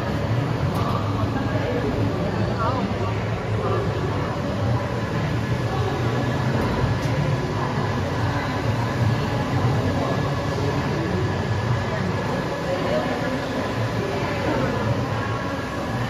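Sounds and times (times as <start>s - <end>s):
printer mechanical hum: 0.0s - 16.0s.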